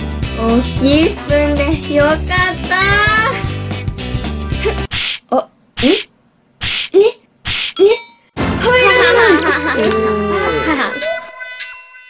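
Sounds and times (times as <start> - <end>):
children's background music: 0.0 - 4.9, 7.8 - 12.0
hissy cartoon sound effects: 4.6 - 8.0.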